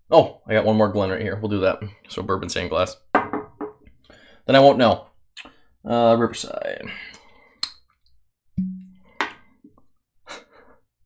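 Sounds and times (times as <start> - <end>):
low glass ring: 8.6 - 9.0.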